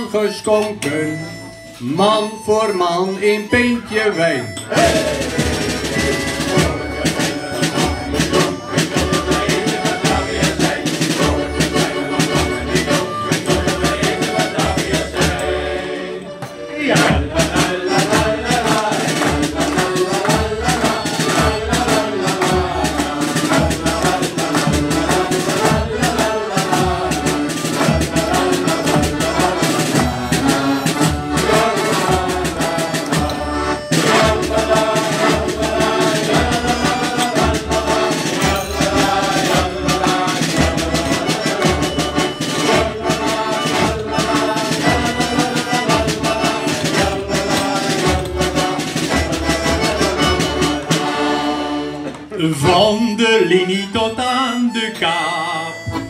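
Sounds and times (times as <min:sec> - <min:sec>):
accordions playing: 0:00.0 - 0:56.0
low steady beat: 0:03.8 - 0:15.8
hand-clapping: 0:16.4 - 0:31.2, 0:46.8 - 0:51.0.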